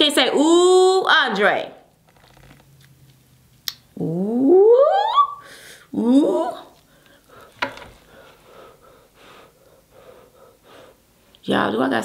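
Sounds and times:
faint breathing: 5.4 - 5.9, 6.8 - 11.4.

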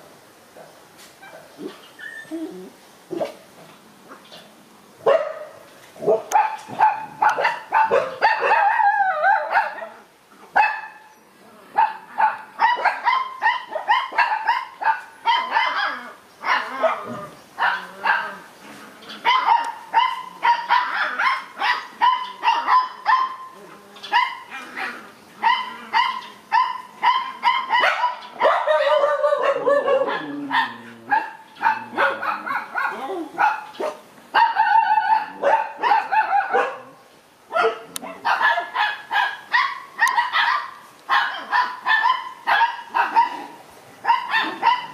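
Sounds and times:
dog barking high-pitched: 5.0 - 10.0, 10.6 - 11.0, 11.8 - 18.4, 19.2 - 23.4, 25.4 - 44.9.

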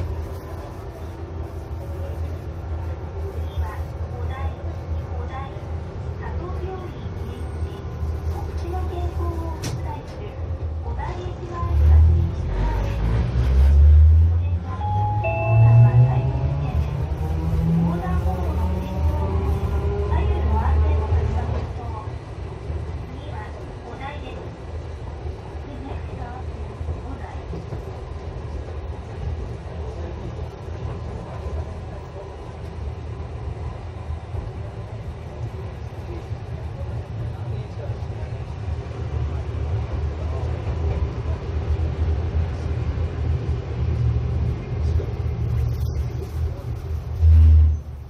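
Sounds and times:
tram rumbling on track: 0.0 - 48.0.

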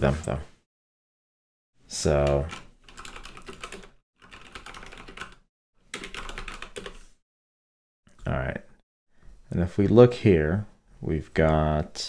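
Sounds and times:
computer keyboard typing: 2.2 - 7.0.

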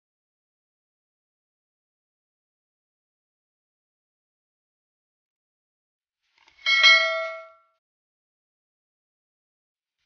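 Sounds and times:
bright notification bell ding: 6.7 - 7.6.

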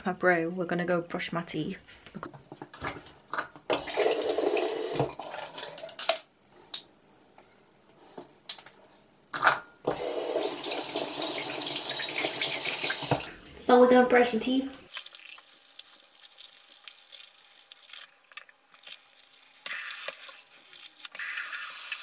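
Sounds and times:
tap running into sink basin: 3.7 - 5.2.

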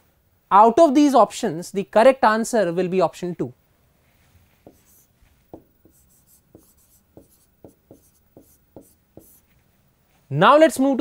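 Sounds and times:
writing taps on a board: 5.5 - 9.4.

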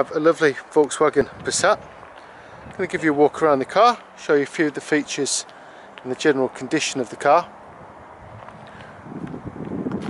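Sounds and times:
wind buffeting microphone: 0.9 - 4.0, 7.5 - 10.0.

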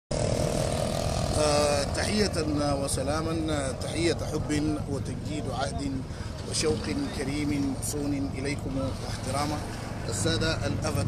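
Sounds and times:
vehicle engine rumble: 0.1 - 11.0.

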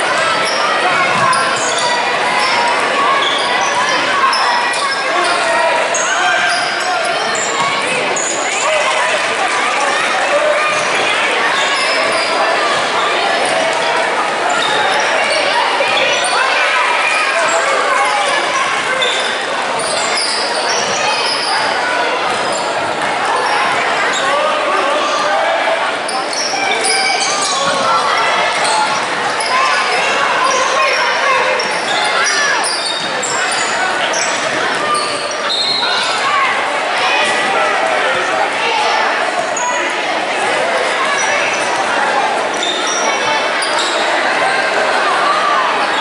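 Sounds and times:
sneaker squeaks: 0.0 - 9.1, 10.5 - 25.2, 26.1 - 36.5, 39.3 - 40.0, 40.6 - 41.9, 42.5 - 44.9
echoing crowd voices: 0.0 - 46.0.

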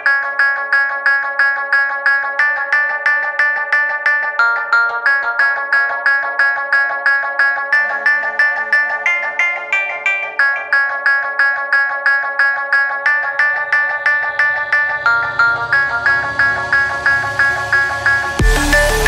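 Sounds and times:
fast picked melody: 0.0 - 19.0.

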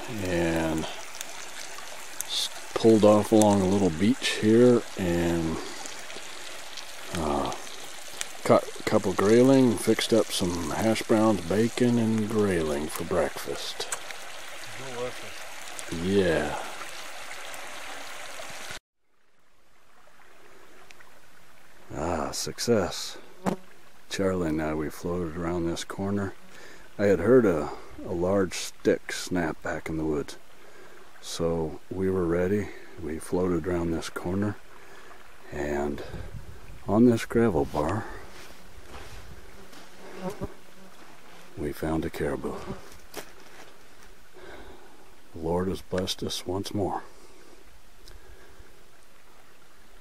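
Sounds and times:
river rushing over gravel: 0.0 - 18.8
quiet outdoor hush: 19.1 - 50.0
flying insect buzzing: 38.6 - 41.4.

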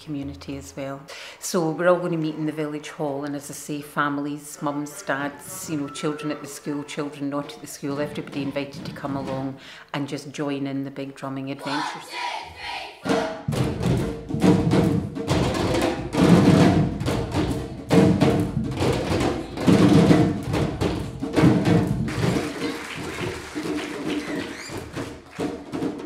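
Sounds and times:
samba drums playing: 13.0 - 26.0.

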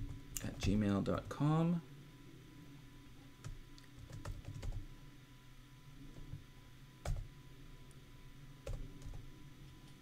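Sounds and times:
keyboard typing: 3.4 - 4.8, 8.6 - 9.2.

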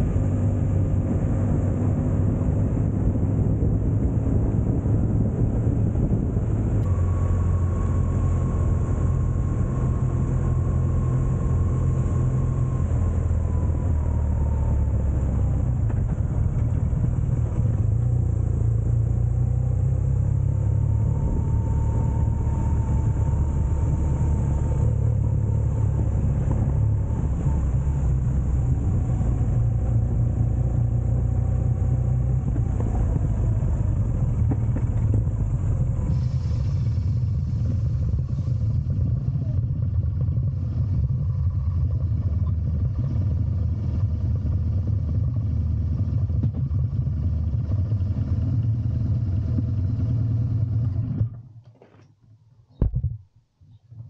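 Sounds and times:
motorcycle engine rumbling: 0.0 - 52.0
road and wind noise: 0.0 - 54.0.

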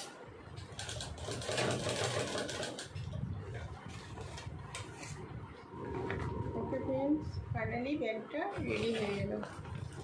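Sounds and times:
sewing machine stitching: 0.8 - 2.9.

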